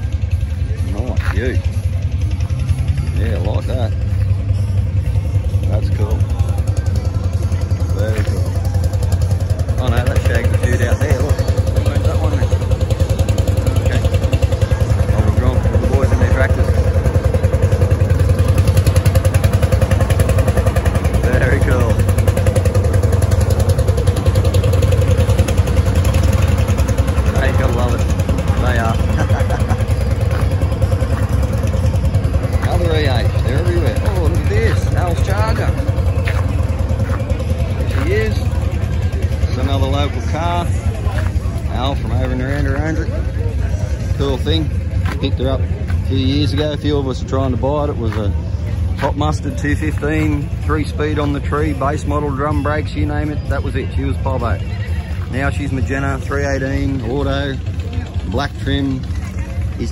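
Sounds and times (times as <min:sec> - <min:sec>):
low engine rumble: 0:00.0 - 0:59.9
people talking: 0:00.0 - 0:59.9.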